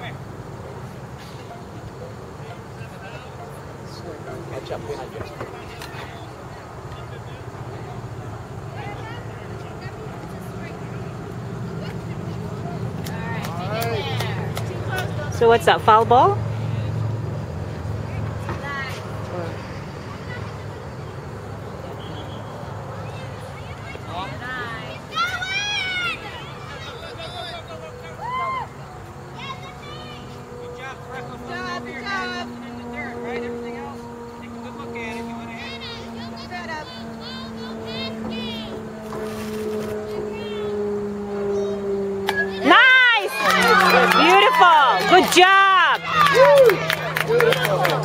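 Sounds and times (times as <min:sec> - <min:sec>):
distant voices calling out: 0:00.0 - 0:48.0
motor-like hum: 0:01.7 - 0:48.0.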